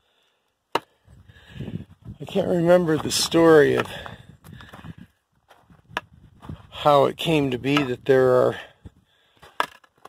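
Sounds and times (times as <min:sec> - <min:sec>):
footsteps on rocks and gravel: 0:01.7 - 0:08.6, 0:09.3 - 0:10.0.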